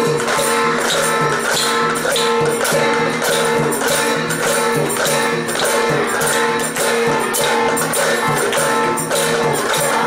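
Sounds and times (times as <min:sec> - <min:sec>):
hand drums striking steady beat: 0:00.0 - 0:10.0.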